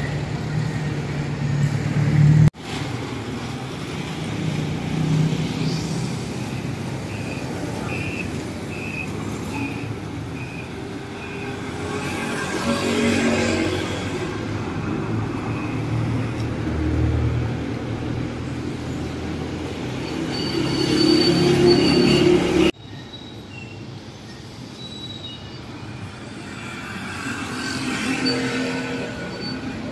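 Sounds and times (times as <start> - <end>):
motorcycles: 0.0 - 22.8, 25.9 - 29.9
quiet street noise: 0.0 - 29.9
high thin squeal: 20.0 - 29.9.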